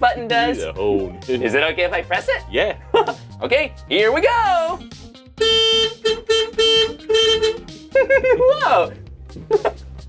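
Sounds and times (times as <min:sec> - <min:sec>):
bus horn honks: 0:05.4 - 0:07.8.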